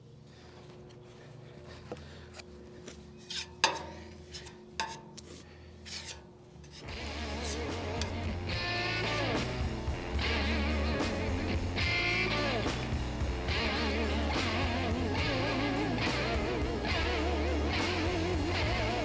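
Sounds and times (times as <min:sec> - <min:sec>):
spreader scraping putty on metal: 0:03.2 - 0:08.2
guitar music: 0:06.8 - 0:19.0.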